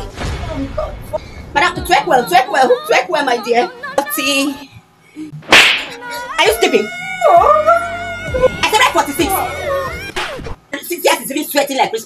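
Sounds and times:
slap on a cheek: 5.5s - 6.0s.

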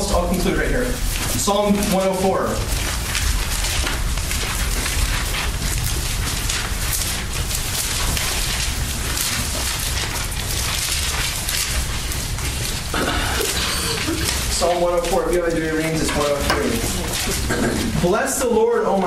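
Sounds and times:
pages rustling and turning: 0.0s - 19.0s.

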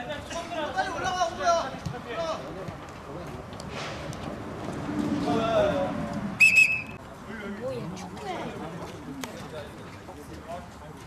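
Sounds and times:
referee's whistle blasts: 6.4s - 7.0s.

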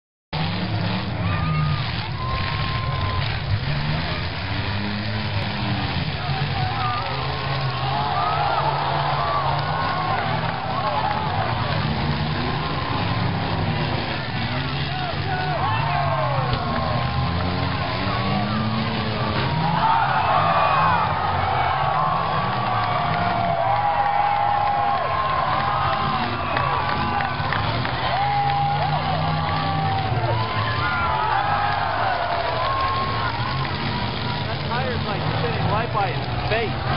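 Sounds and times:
car engines revving: 0.4s - 36.9s
cars ramming: 0.4s - 36.9s
crowd voices: 0.4s - 36.9s.

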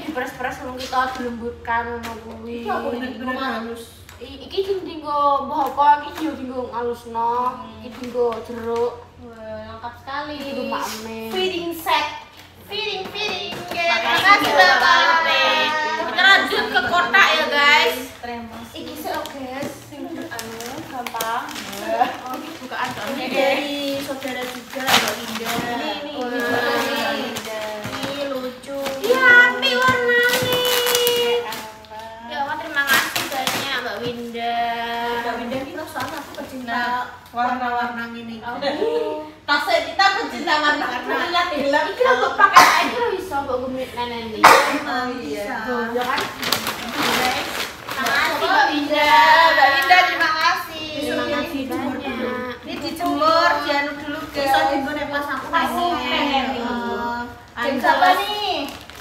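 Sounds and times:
women talking: 0.0s - 58.9s
plastic wrapping crinkling: 16.7s - 37.2s, 45.5s - 52.0s, 57.3s - 59.0s.

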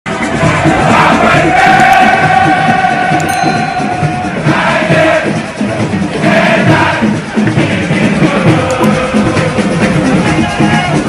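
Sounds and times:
crowd shouting and chanting: 0.1s - 11.0s
music: 0.1s - 11.0s
steady held tone: 3.2s - 5.0s.

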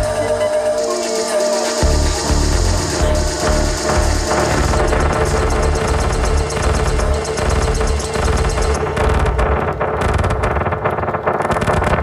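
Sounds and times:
steady synth tone: 0.0s - 9.8s
fast high ticking pattern: 0.0s - 12.0s
kick drum and bass: 1.8s - 12.0s.

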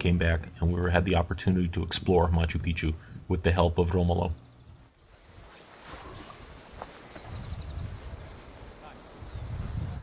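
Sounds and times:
small bird singing: 4.2s - 9.7s.

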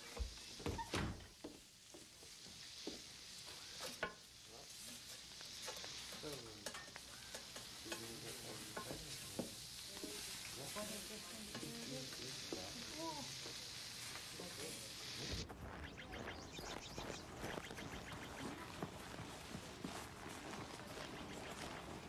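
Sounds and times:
food sizzling on a griddle: 0.0s - 22.0s.

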